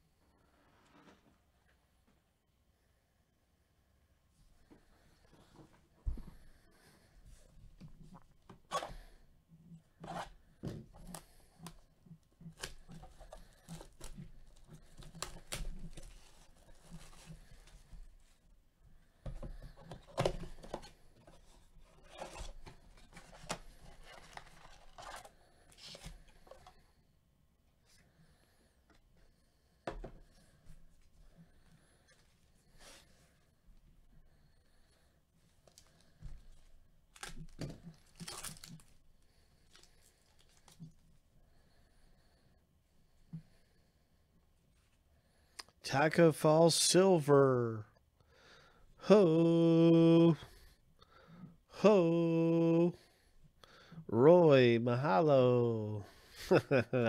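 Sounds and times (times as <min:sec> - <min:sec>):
foil wrappers crinkling: 0:37.1 - 0:39.0, 0:39.7 - 0:40.9.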